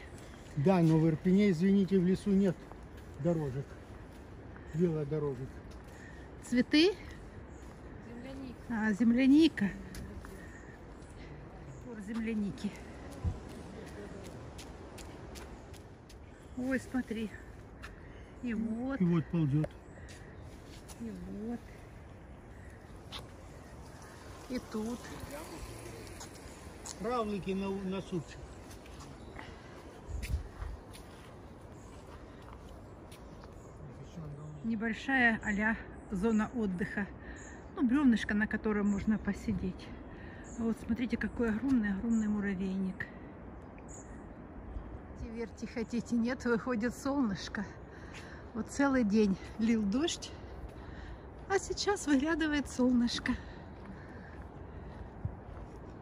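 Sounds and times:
footsteps on soft ground: 0.0 - 11.0, 11.6 - 18.0, 19.7 - 34.1, 49.3 - 56.0
outdoor background noise: 0.0 - 56.0.

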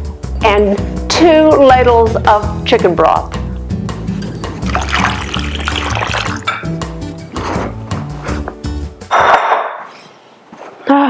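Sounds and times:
background music: 0.0 - 9.2
broth pouring and splashing: 4.6 - 6.6.

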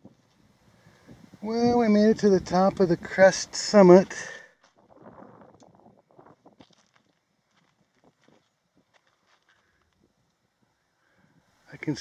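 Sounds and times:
faint scuffing and crackling: 4.6 - 10.4.

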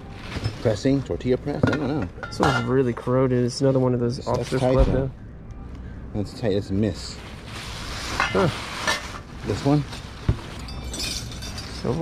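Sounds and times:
tissue paper rustling: 6.9 - 12.0.

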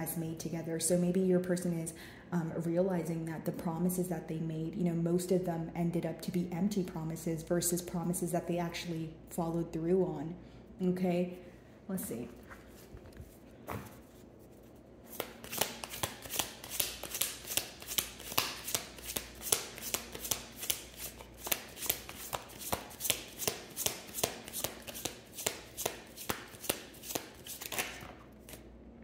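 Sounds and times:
cards being shuffled: 12.7 - 28.7.

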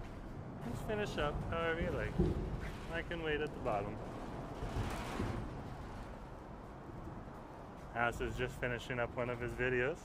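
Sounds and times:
low traffic rumble: 0.0 - 10.0.

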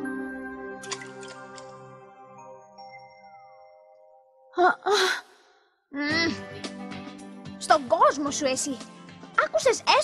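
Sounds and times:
woman sighing: 4.6 - 5.4.

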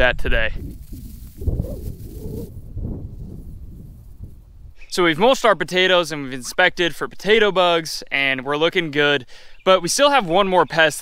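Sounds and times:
straw rustling: 0.6 - 4.2.

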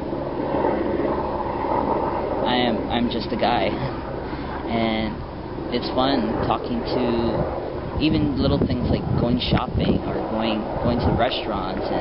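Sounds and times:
outdoor low rush and hiss: 0.0 - 12.0.

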